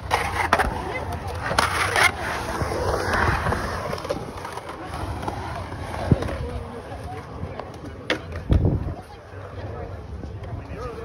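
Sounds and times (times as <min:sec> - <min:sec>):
skateboard clacking on concrete: 0:00.0 - 0:09.1
skateboard wheels rolling on concrete: 0:00.0 - 0:11.0.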